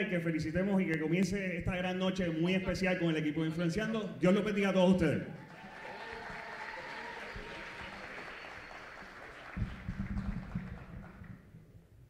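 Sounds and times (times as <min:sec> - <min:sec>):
audience applauding: 0:05.4 - 0:11.4.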